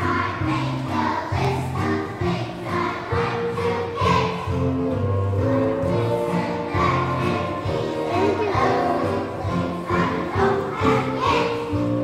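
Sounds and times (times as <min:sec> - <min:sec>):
children's choir singing: 0:00.0 - 0:12.0
musical accompaniment: 0:00.0 - 0:12.0.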